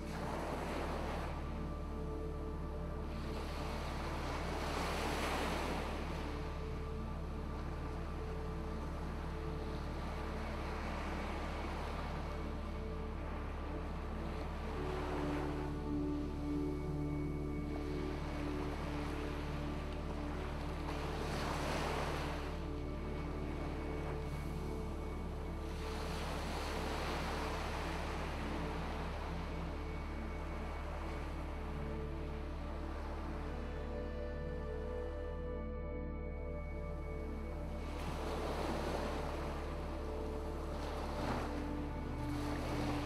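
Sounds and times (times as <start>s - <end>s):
ocean waves: 0.0s - 35.3s, 36.7s - 43.0s
soft ambient music: 0.0s - 43.0s.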